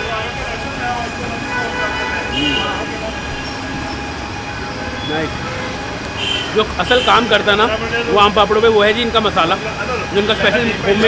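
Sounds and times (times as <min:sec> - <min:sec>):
people talking: 0:00.0 - 0:05.7, 0:06.4 - 0:11.0
traffic hum: 0:00.0 - 0:11.0.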